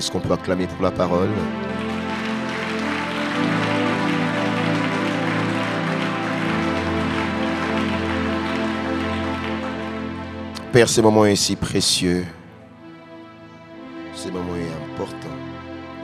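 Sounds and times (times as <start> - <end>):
soft sustained keyboard chords: 0.0 - 16.0
congregation applauding: 1.0 - 11.5.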